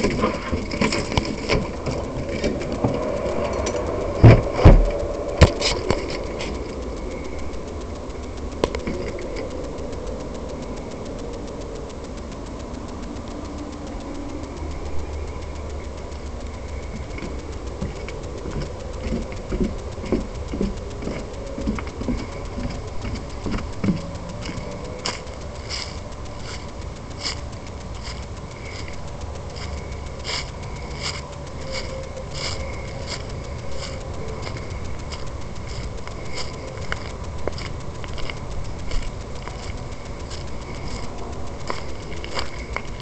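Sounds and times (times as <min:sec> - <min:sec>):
low background rumble: 0:00.0 - 0:43.0
footsteps on leafy grass: 0:16.8 - 0:43.0.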